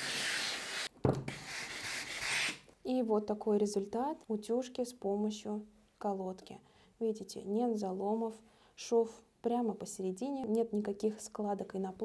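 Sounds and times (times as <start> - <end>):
steam iron hissing: 0.0 - 0.9.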